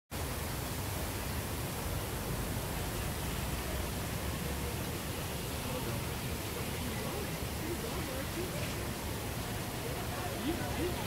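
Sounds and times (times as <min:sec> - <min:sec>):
city rushing noise: 0:00.1 - 0:11.0.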